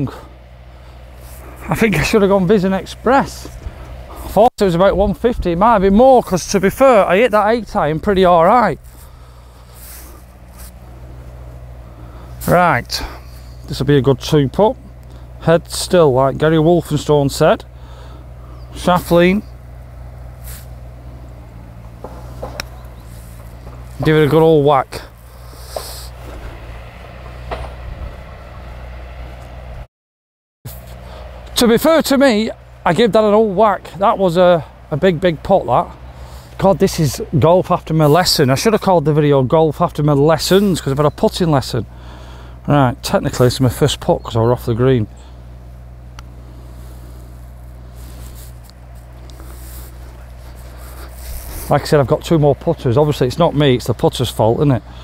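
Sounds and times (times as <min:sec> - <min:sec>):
low background hum: 0:00.0 - 0:29.9, 0:30.7 - 0:55.0
putter striking golf ball: 0:20.7 - 0:23.9
golf putter striking ball: 0:22.0 - 0:22.9.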